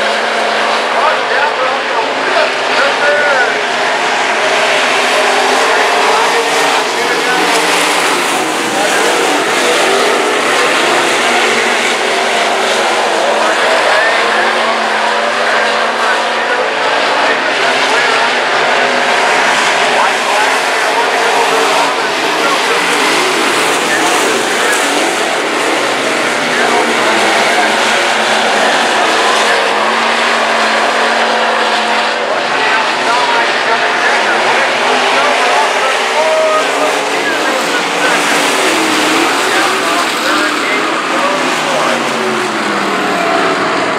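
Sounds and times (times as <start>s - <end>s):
racing car engines: 0.0s - 43.9s.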